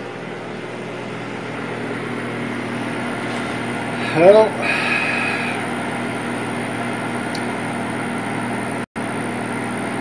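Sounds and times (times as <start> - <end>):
steady machine hum with whine: 0.0 - 10.0.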